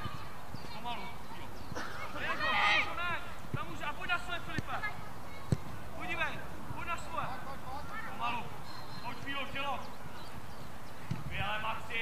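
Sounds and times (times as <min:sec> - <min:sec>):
children shouting: 0:01.8 - 0:03.0.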